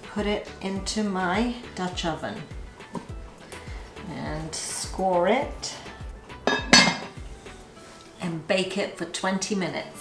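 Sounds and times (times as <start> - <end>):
background music: 0.0 - 10.0
casserole lid clinking: 6.4 - 7.2.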